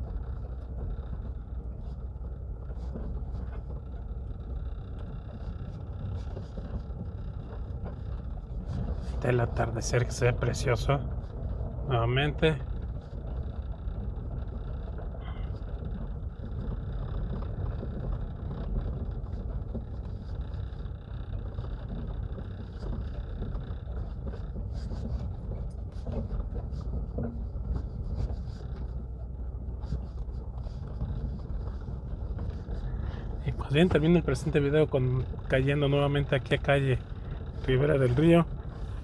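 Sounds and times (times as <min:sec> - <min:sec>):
car engine and tyres rumbling: 0:00.0 - 0:39.0.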